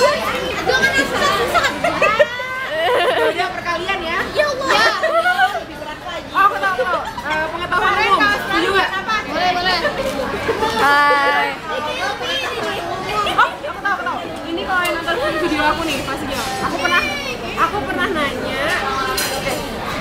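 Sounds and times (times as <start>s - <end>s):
young women talking: 0.0s - 19.6s.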